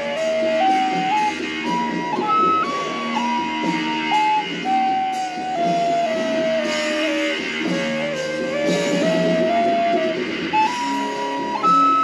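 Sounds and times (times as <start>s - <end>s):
lower accompaniment: 0.0s - 12.0s
wooden recorder melody: 0.0s - 12.0s.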